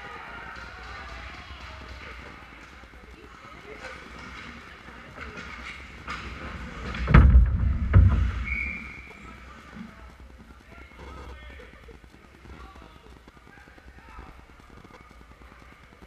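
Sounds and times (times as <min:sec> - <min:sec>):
faint crowd voices: 0:00.0 - 0:16.0
heavy thuds on hockey goal: 0:07.0 - 0:08.5.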